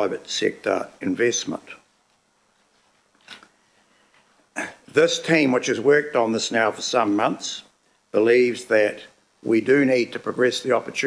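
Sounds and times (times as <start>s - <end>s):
man speaking: 0.0s - 1.9s, 4.6s - 11.0s.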